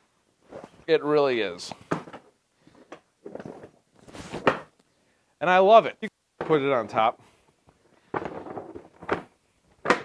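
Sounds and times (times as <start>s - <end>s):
plastic crate clattering: 8.1s - 10.0s
plastic crate clunk: 8.1s - 10.0s.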